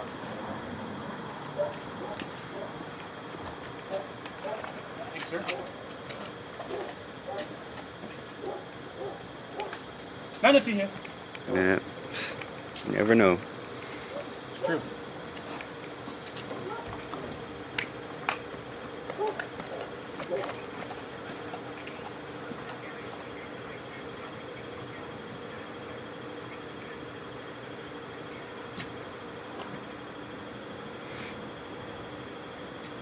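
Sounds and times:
electrical hum: 0.0s - 33.0s.

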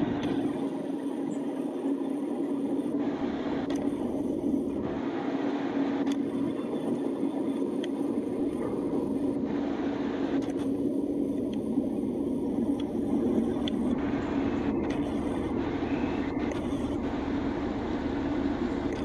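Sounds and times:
car engine drone from inside: 0.0s - 19.0s.

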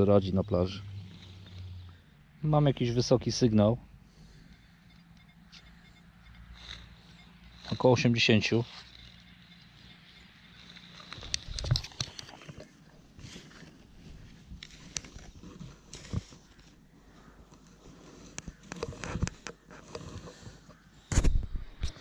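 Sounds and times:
digging in sand: 0.0s - 22.0s
faint high steady tone: 2.6s - 11.3s.

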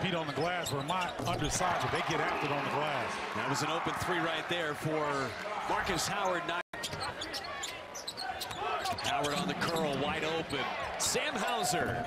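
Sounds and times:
murmur of arena crowd: 0.0s - 12.0s.

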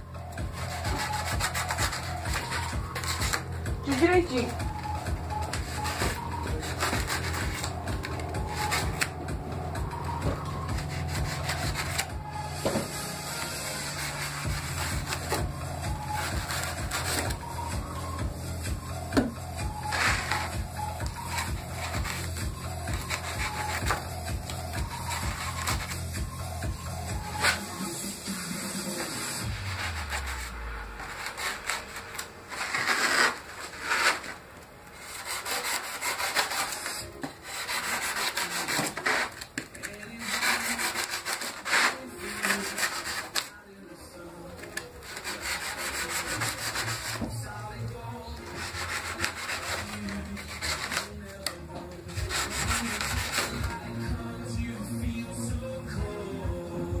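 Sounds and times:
hand sanding styrofoam: 0.2s - 43.6s, 44.6s - 47.5s, 48.4s - 51.4s, 52.1s - 53.9s.

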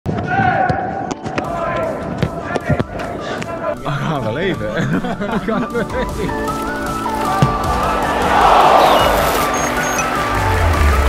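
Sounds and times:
voices calling out: 6.3s - 10.4s.

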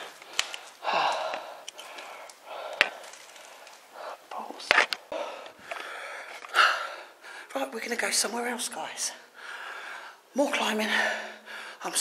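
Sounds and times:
footsteps on rubble: 0.0s - 6.6s.

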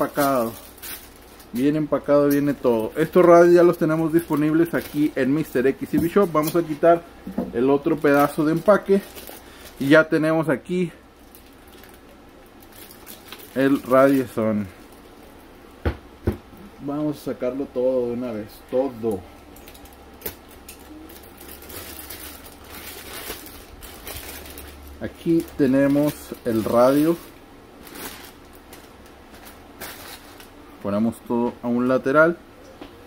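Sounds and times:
plastic bag rustling and crinkling: 0.0s - 15.4s, 19.0s - 30.6s.

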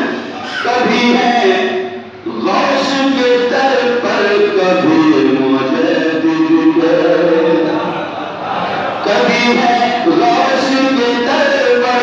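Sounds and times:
man chanting into microphone: 0.0s - 8.0s, 9.0s - 12.0s.

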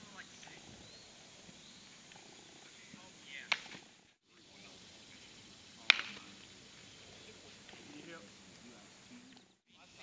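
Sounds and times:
faint outdoor background: 0.0s - 10.0s
baseball smacking into glove: 5.9s - 6.3s.

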